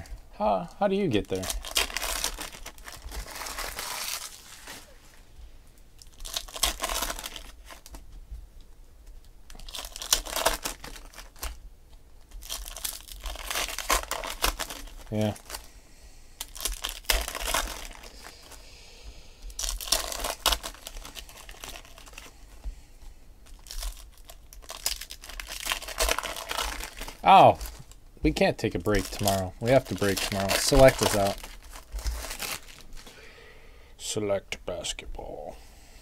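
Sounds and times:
foil wrappers tearing and crinkling: 1.1 - 5.2, 6.0 - 8.0, 9.5 - 11.6, 12.2 - 15.7, 16.4 - 18.6, 19.4 - 22.6, 23.4 - 28.0, 28.6 - 33.1
cards being handled: 28.8 - 33.1.

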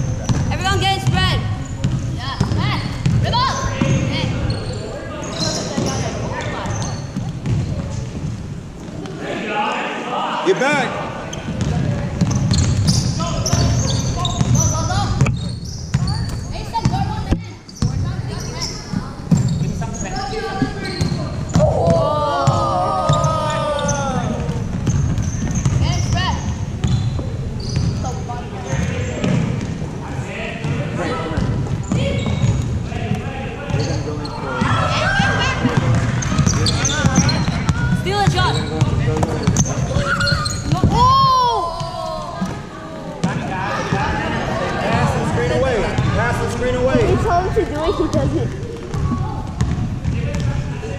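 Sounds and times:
basketball bouncing on hardwood floor: 1.8 - 4.0, 7.4 - 7.6, 11.6 - 12.9, 48.1 - 50.5
indistinct voices calling: 21.5 - 24.6.

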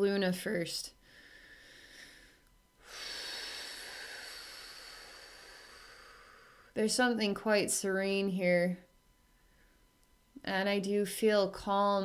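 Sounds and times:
woman breathing in through nose: 1.0 - 6.8.

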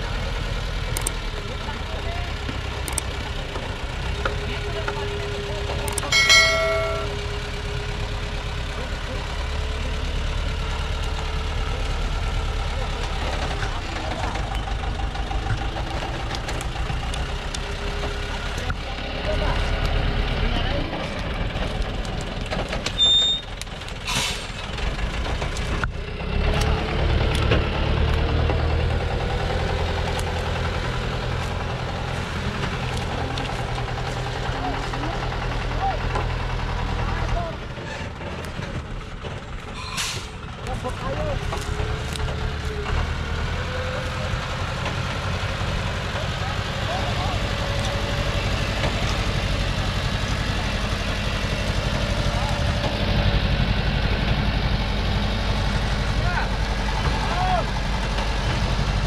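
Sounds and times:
diesel truck engine under load: 0.0 - 59.0.

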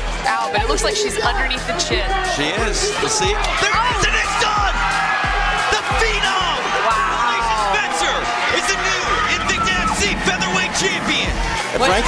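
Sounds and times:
background music with a beat: 0.0 - 12.0.

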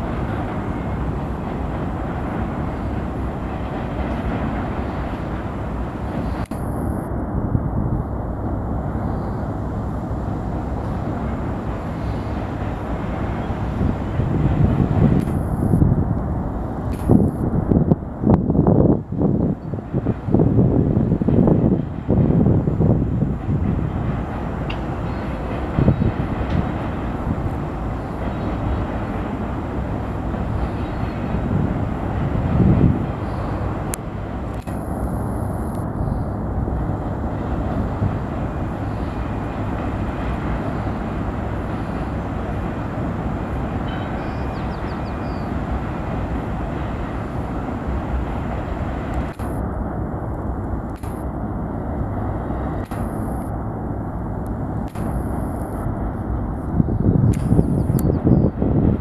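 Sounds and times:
freight train rumbling over bridge: 0.0 - 59.0.

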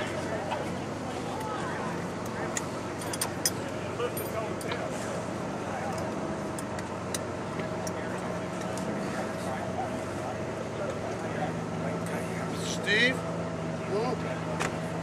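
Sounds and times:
engine idling: 0.0 - 15.0
faint indistinct voices: 0.0 - 15.0.

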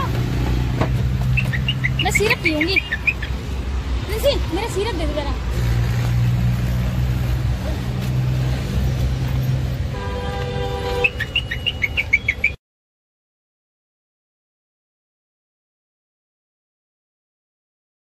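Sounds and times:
vehicle engine rumbling: 0.0 - 12.6
birds chirping: 1.0 - 3.6, 10.8 - 12.6
vehicle horn: 9.9 - 11.5.

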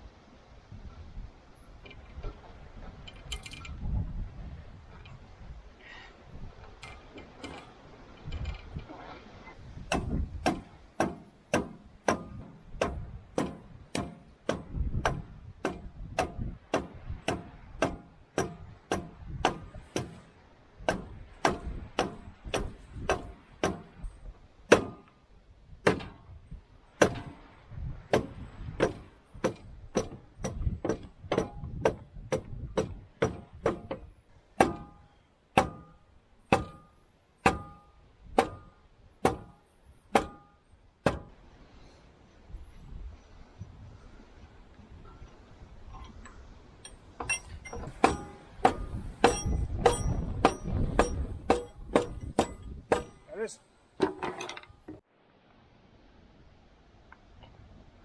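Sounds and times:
short metallic ring: 46.8 - 53.3.

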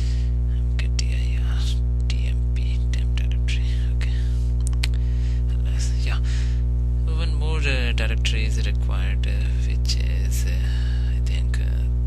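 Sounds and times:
soft breathy whisper: 0.0 - 6.6
electrical mains hum: 0.0 - 12.0.

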